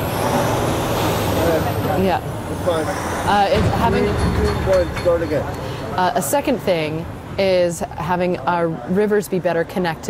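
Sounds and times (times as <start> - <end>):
heavy vehicle engine humming: 0.0 - 4.1.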